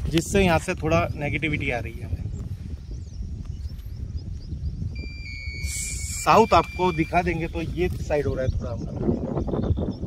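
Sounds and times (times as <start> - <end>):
wind rumbling on microphone: 0.0 - 10.0
steady high-pitched tone: 5.0 - 7.6.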